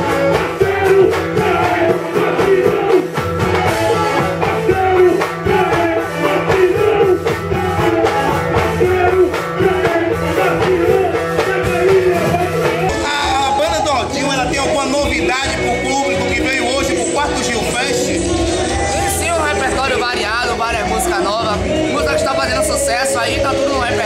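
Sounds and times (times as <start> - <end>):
live band music: 0.0 - 24.0
man singing into a microphone: 0.0 - 24.0.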